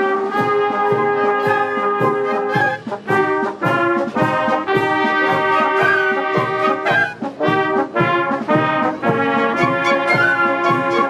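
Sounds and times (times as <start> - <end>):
brass: 0.0 - 11.0
flutes and clarinets: 0.0 - 11.0
wind band playing: 0.0 - 11.0.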